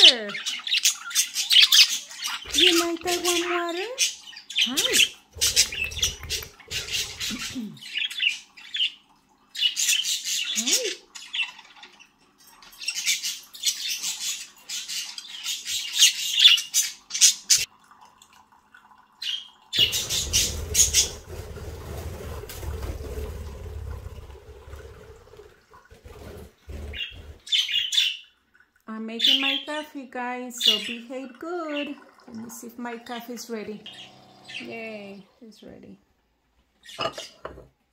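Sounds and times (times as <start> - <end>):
budgerigars chattering and squawking: 0.0 - 9.0, 19.8 - 21.2, 26.8 - 28.2.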